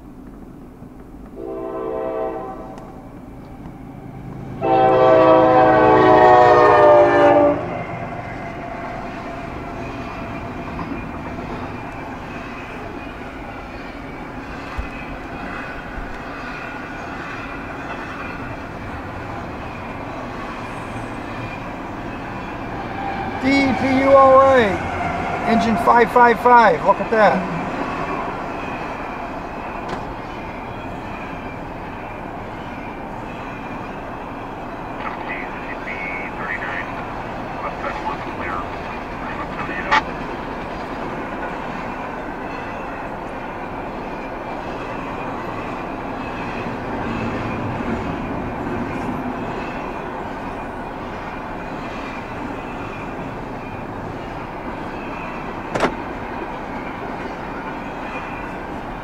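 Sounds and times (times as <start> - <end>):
train wheels rumbling on rail: 0.0 - 59.0
sharp knocks: 55.7 - 56.0.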